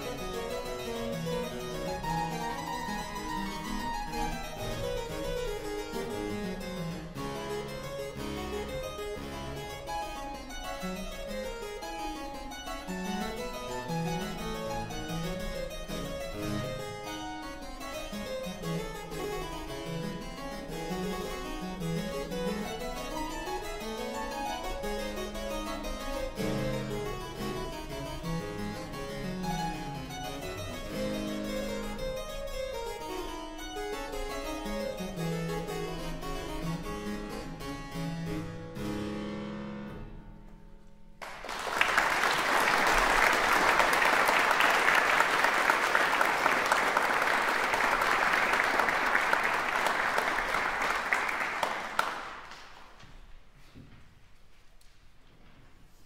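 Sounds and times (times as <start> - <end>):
harpsichord playing fast scales: 0.0 - 40.4, 41.3 - 52.5.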